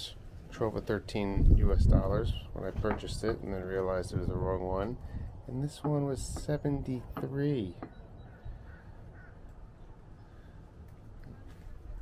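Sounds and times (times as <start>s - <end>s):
distant bird calls: 4.9s - 12.0s.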